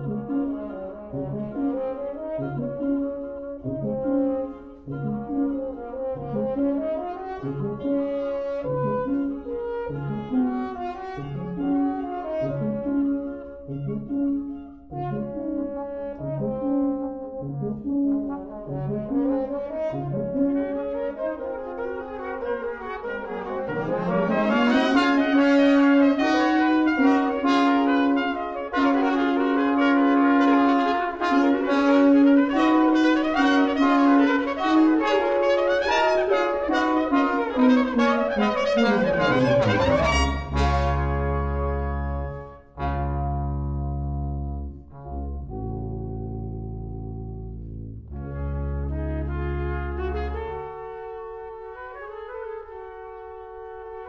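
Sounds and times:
brass quintet playing: 0.0s - 54.0s.

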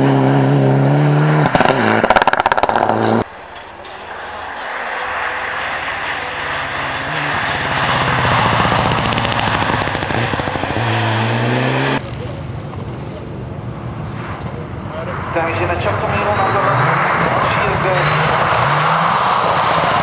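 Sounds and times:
rally car engine at high revs: 0.0s - 3.2s, 6.1s - 12.0s, 15.9s - 20.0s
engine crackling pulses: 0.0s - 12.1s.

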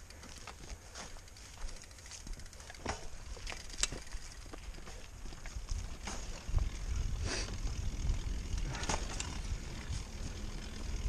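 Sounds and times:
bike clicks and rattles: 0.0s - 11.0s
bike tyres rumbling on dirt: 0.0s - 11.0s.

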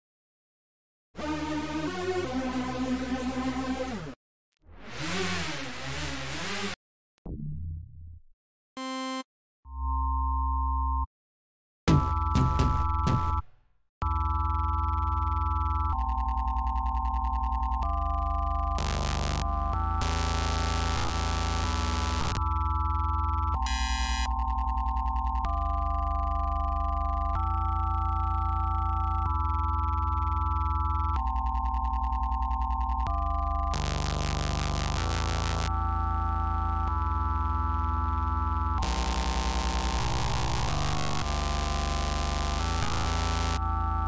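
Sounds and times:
pulsing bass: 15.5s - 44.0s
synthesizer chords: 31.0s - 44.0s.

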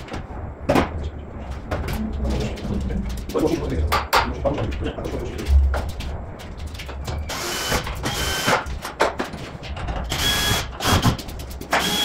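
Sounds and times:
tools and parts clattering: 8.5s - 10.2s
power tool whining: 11.8s - 12.0s.

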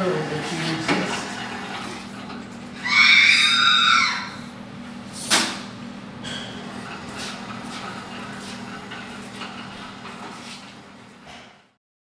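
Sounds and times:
robot electronic squeal: 2.8s - 4.4s.

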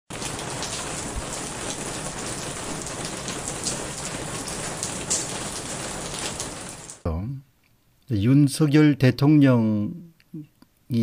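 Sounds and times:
raindrops ticking: 0.1s - 7.0s
steady rain hiss: 0.1s - 7.0s.

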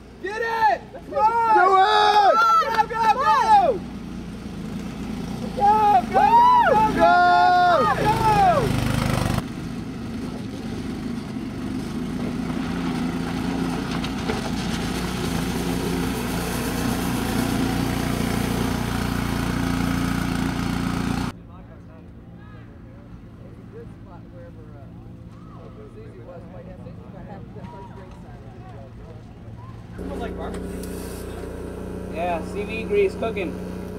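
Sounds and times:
distant voices: 0.0s - 9.4s, 10.1s - 33.9s
spectators yelling and cheering: 0.2s - 3.9s, 5.5s - 9.0s
buggy engine at high revs: 2.0s - 21.3s, 30.0s - 33.9s.

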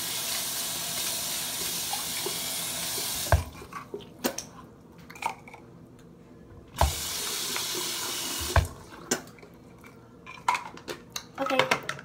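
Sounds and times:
tap water running into basin: 0.0s - 3.6s, 6.8s - 9.6s.

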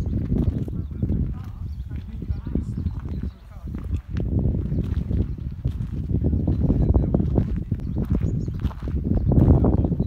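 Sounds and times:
faint voices: 0.0s - 10.0s
wind rumbling on microphone: 0.0s - 10.0s.

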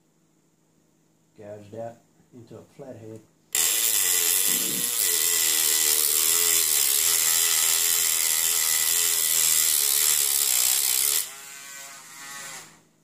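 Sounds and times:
rotary tool grinding metal: 3.5s - 12.8s
rotary tool spinning: 3.6s - 11.3s.

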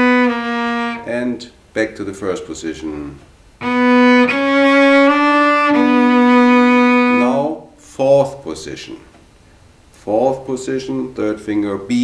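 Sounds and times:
bowed cello notes: 0.0s - 1.6s, 3.6s - 7.8s.

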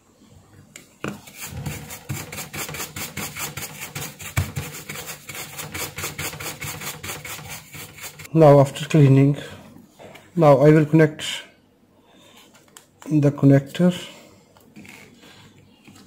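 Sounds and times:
brush scrubbing circuit board: 1.2s - 8.3s.

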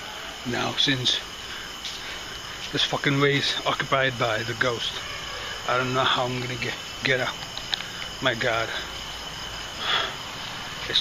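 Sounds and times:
night insects chirping: 0.0s - 11.0s.

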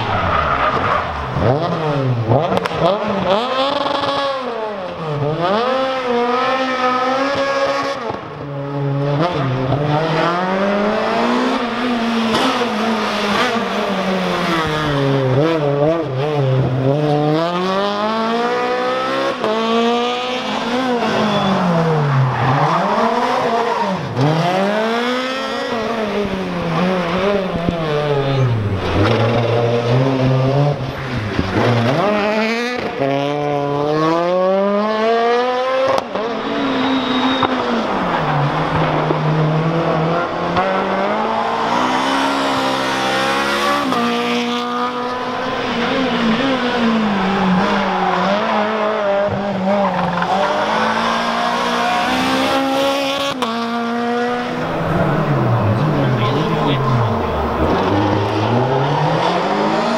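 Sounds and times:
rally car engines revving: 0.0s - 59.9s.

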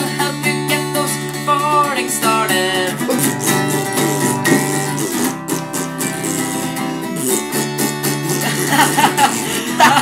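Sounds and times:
acoustic guitar strummed: 0.0s - 10.0s
mouth-blown raspberries: 0.5s - 10.0s.

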